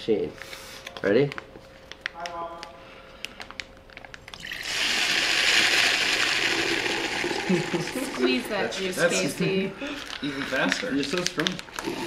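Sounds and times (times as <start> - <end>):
plastic pouch crinkling: 3.2 - 4.4, 9.9 - 11.9
juice squirting hiss: 11.7 - 12.0.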